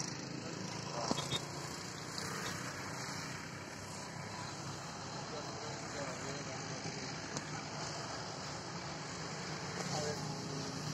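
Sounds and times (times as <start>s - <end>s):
open-air background noise: 0.0s - 10.9s
faint distant voices: 0.1s - 10.9s.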